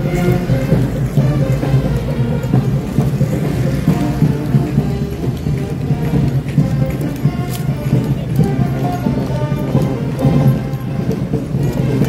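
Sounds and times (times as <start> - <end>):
marching band brass: 0.0 - 12.0
marching drums: 0.0 - 12.0.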